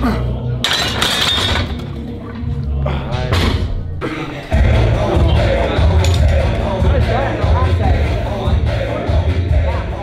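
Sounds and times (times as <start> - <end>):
gym music with heavy bass: 1.6 - 10.0.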